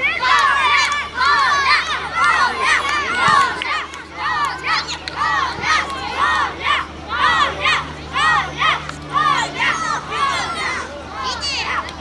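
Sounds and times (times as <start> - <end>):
children chanting: 0.0 - 12.0.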